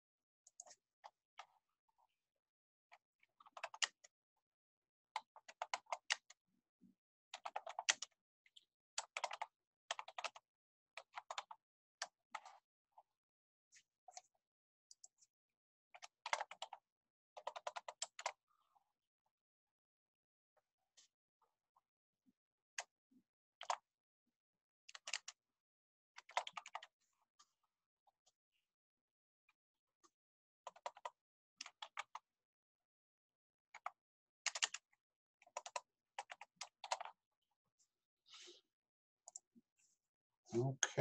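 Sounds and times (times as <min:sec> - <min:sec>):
typing on computer keyboard: 0:03.4 - 0:04.1, 0:05.2 - 0:06.3, 0:07.3 - 0:08.1, 0:09.0 - 0:10.4, 0:11.0 - 0:12.6, 0:15.9 - 0:16.8, 0:17.4 - 0:18.4, 0:24.9 - 0:25.4, 0:26.2 - 0:26.9, 0:30.7 - 0:32.2, 0:33.8 - 0:37.2.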